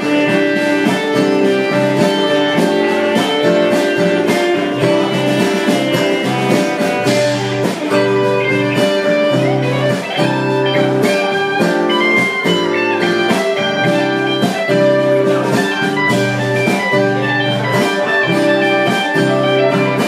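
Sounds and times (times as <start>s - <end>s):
drums: 0.0s - 20.0s
electric guitar: 0.0s - 20.0s
strummed acoustic guitar: 0.0s - 20.0s.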